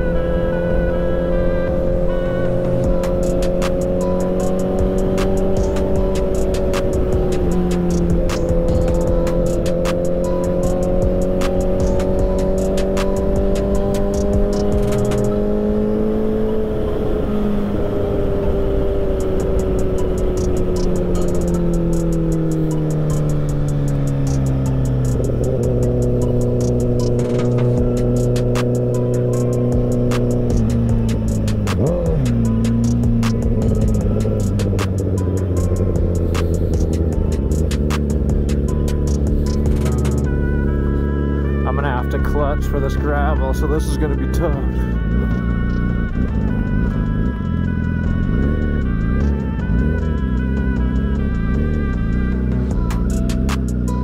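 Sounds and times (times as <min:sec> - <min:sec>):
motorcycle engine cruising: 0:00.0 - 0:54.0.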